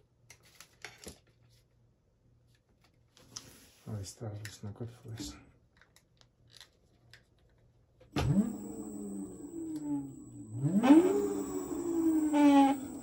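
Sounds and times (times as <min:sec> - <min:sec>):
electric motor whine: 0:08.2 - 0:13.0.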